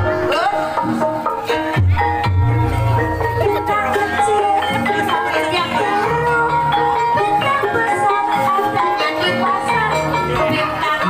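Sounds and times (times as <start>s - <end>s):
struck metallophone notes: 0.0s - 11.0s.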